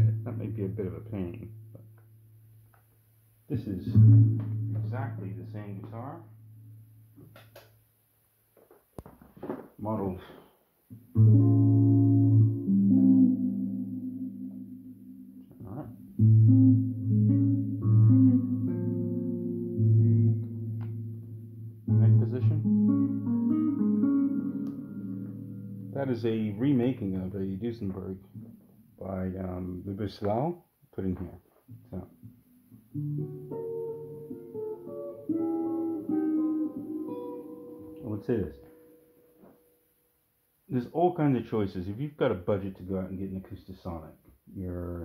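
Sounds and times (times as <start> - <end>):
electric guitar chord ringing: 3.8 - 6.8, 11.2 - 27.0, 32.9 - 39.8.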